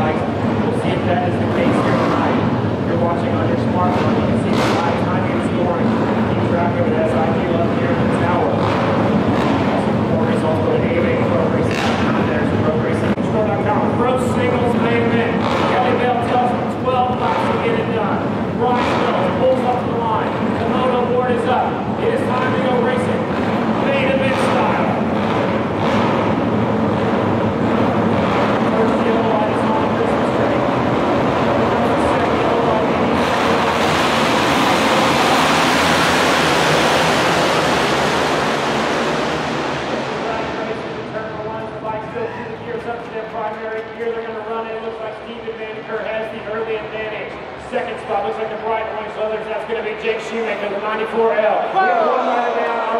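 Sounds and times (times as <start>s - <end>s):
racing motorcycles running: 0.0s - 49.4s
racetrack crowd noise: 0.0s - 52.9s
rush of noise: 0.0s - 52.9s.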